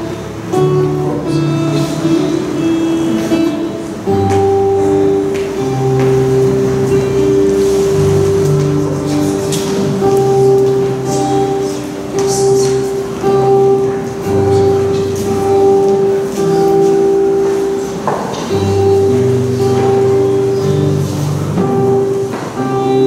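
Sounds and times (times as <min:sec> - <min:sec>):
instrumental music with held chords: 0:00.0 - 0:23.0.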